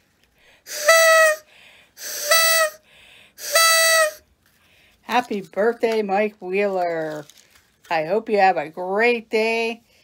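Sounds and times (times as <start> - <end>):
party blower reedy blasts: 0.6 - 4.2
quick breaths: 1.4 - 3.5, 4.5 - 5.1.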